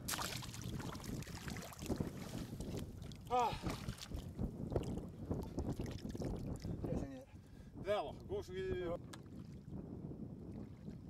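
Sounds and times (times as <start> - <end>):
shallow water splashing: 0.0 - 6.8.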